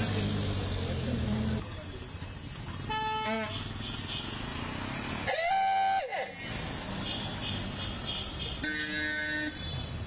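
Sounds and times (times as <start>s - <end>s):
traffic and engine noise: 0.0s - 10.0s
vehicle horn: 2.9s - 3.6s, 7.4s - 9.9s.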